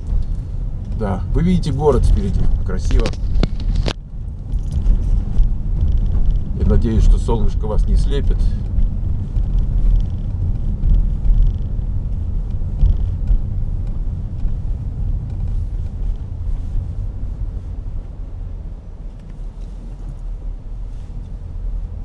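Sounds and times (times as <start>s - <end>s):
engine and tyre rumble: 0.0s - 22.0s.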